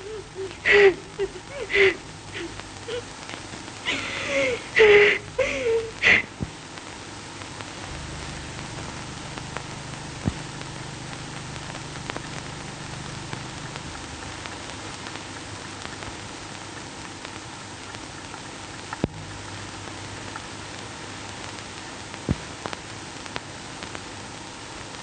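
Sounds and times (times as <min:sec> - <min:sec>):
film soundtrack hiss and crackle: 0:00.0 - 0:25.0
low hum: 0:07.6 - 0:16.6
clicks and pops: 0:07.6 - 0:20.5.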